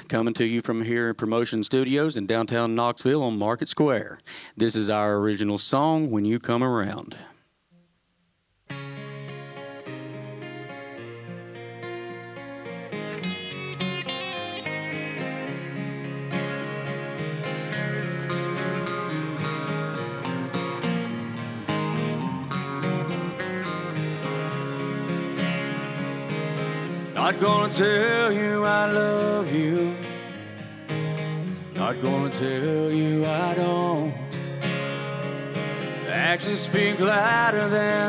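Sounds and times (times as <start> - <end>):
electric guitar: 8.7 - 38.0
strummed acoustic guitar: 8.7 - 38.0
bass guitar: 9.0 - 38.0.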